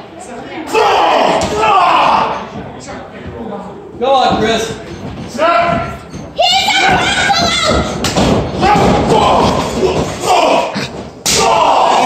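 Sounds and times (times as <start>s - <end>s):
loud wordless yelling: 0.6s - 2.4s, 6.4s - 8.0s, 8.6s - 12.0s.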